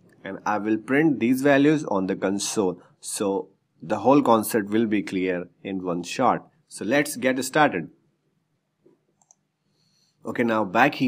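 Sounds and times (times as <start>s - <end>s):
computer mouse clicks: 8.9s - 9.5s.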